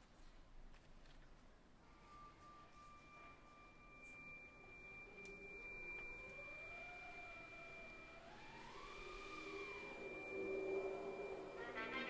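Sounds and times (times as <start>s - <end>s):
high steady wind instrument tone: 1.8s - 12.0s
low tone swooping in pitch: 8.4s - 12.0s.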